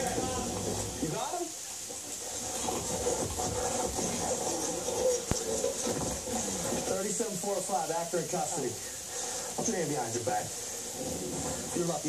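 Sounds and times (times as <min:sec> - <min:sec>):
scuffling commotion on television: 0:00.0 - 0:12.0.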